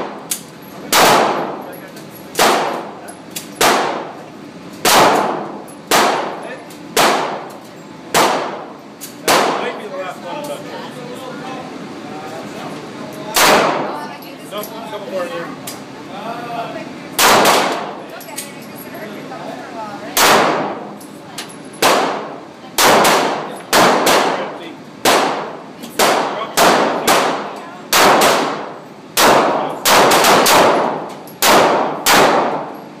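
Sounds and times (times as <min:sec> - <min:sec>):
pistol shots echoing indoors: 0:00.0 - 0:01.6, 0:02.3 - 0:04.2, 0:04.8 - 0:06.4, 0:07.0 - 0:09.7, 0:13.3 - 0:13.9, 0:17.2 - 0:17.9, 0:20.2 - 0:20.9, 0:21.8 - 0:32.8.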